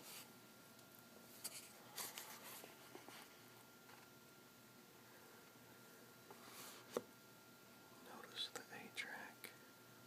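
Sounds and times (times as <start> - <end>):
soft whispering: 7.9 - 9.7.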